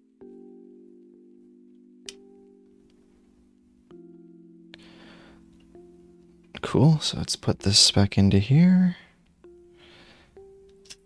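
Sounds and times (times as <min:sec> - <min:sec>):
quiet music of held chords: 0:00.0 - 0:11.0.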